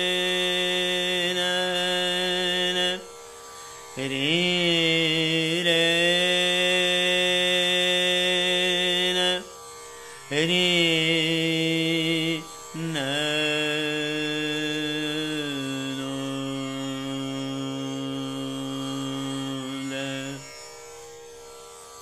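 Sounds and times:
man singing long held notes: 0.0 - 3.2, 4.0 - 9.5, 10.3 - 20.5
faint tanpura drone: 0.0 - 22.0.

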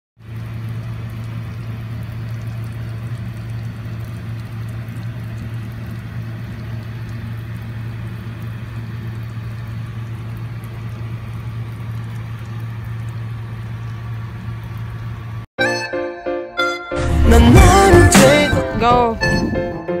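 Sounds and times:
low mechanical hum: 0.2 - 15.5.

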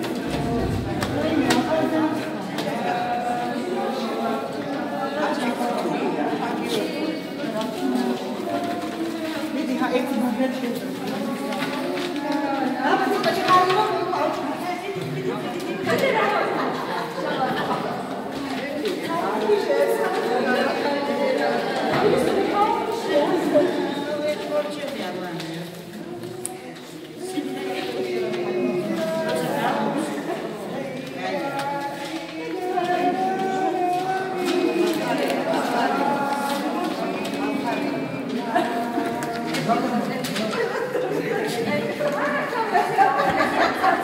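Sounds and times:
overlapping voices: 0.0 - 44.0
people talking at once: 0.0 - 44.0.

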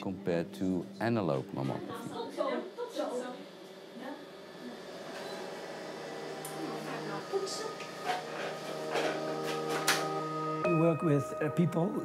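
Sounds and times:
soft sustained background music: 0.0 - 3.2, 5.7 - 12.0.

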